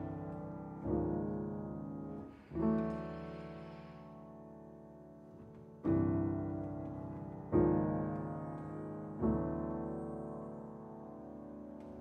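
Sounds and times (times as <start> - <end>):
soft jazz piano chords: 0.0 - 12.0.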